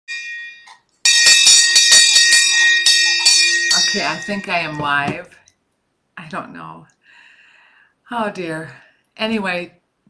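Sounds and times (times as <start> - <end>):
handbell ringing: 0.1 - 4.8.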